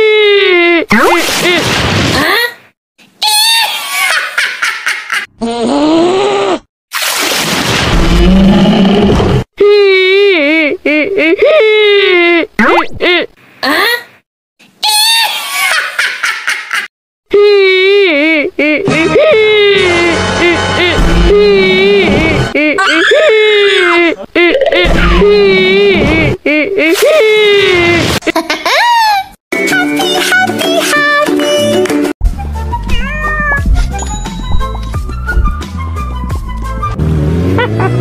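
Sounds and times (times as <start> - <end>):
cat meowing: 32.9 - 33.7
snickering laugh: 37.6 - 38.0.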